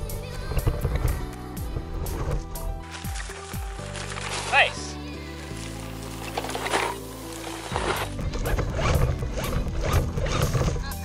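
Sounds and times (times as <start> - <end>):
background music with sustained chords: 0.0 - 11.0
toy truck rattling over dirt: 2.0 - 11.0.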